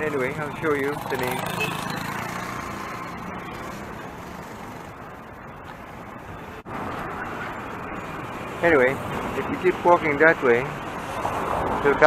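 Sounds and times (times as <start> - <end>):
motorcycle engine close by: 0.0 - 5.3
hum of passing traffic: 0.0 - 12.0.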